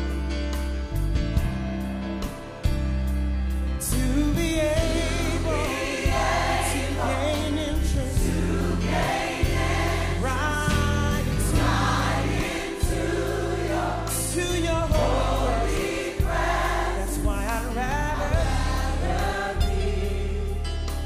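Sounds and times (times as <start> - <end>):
sustained bass notes: 0.0 - 21.0
choir singing gospel song: 3.8 - 21.0.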